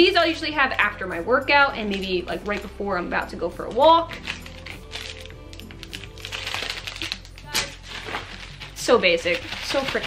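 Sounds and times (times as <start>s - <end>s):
soft background music: 0.0s - 10.0s
plastic packaging crinkling: 1.8s - 2.8s, 3.6s - 10.0s.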